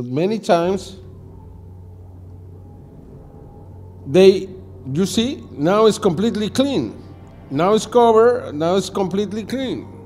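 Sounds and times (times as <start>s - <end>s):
steady low hum: 0.5s - 10.0s
faint higher tones: 0.6s - 10.0s.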